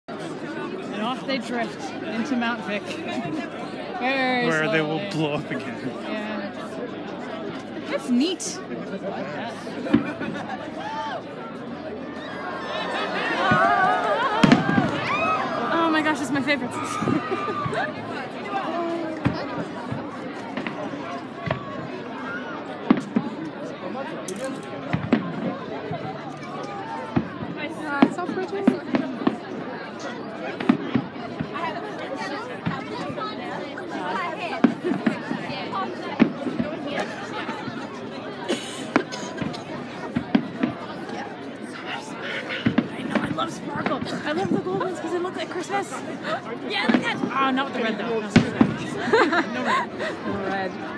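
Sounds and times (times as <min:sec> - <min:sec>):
spectators chattering: 0:00.1 - 0:50.9
fireworks bursting: 0:14.4 - 0:15.1, 0:46.8 - 0:47.6.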